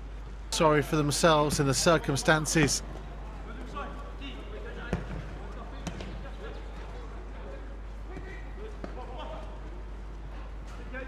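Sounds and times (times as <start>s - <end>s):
hum of stadium crowd: 0.0s - 11.0s
football kick thuds: 4.9s - 6.2s.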